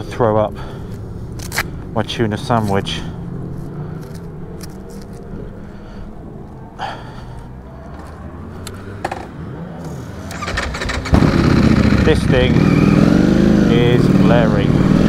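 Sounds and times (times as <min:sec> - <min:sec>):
motorcycle engine idling and revving: 0:00.0 - 0:15.0.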